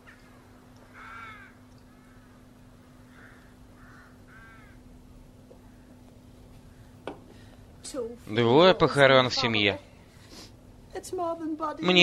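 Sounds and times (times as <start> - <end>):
crows cawing: 0.0 - 4.9, 5.6 - 7.5
faint low hum: 0.0 - 12.0.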